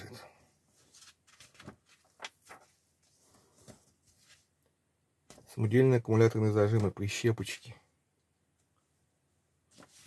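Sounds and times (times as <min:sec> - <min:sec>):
magazine pages rustling: 0:00.7 - 0:04.6, 0:09.7 - 0:10.0.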